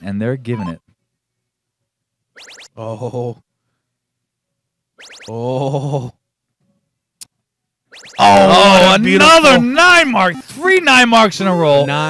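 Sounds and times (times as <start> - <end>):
rising electronic chirp: 2.4 - 2.8, 5.0 - 5.4, 7.9 - 9.6.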